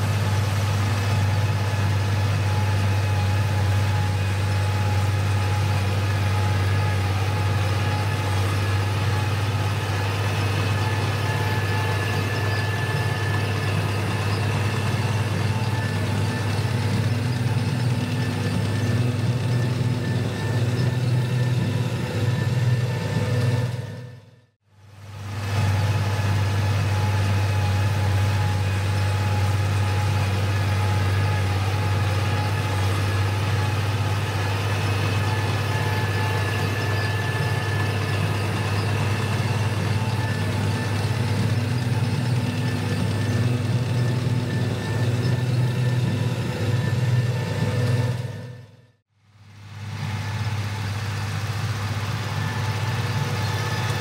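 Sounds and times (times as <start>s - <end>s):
tractor diesel engine running: 0.0s - 54.0s.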